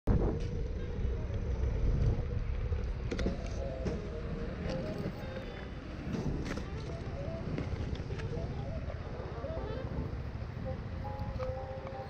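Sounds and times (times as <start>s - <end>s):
faint steady hum: 0.1s - 12.0s
road vehicle rumble: 0.1s - 12.0s.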